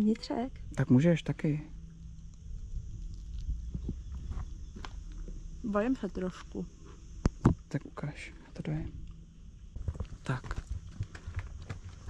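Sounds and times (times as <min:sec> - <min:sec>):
low wind rumble: 0:00.0 - 0:12.0.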